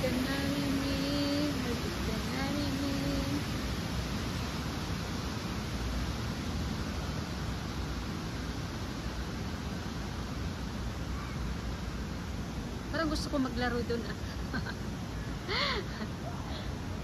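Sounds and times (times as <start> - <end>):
steady outdoor rushing noise: 0.0 - 17.0.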